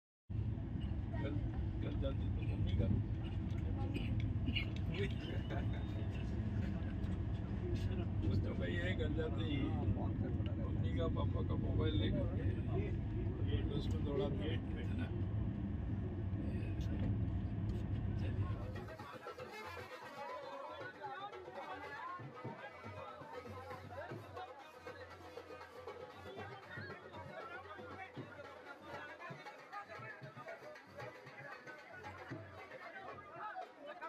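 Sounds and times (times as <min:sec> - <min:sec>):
train coach rumble: 0:00.4 - 0:19.8
voices: 0:00.4 - 0:34.0
people chatting: 0:00.8 - 0:15.2, 0:15.9 - 0:34.0.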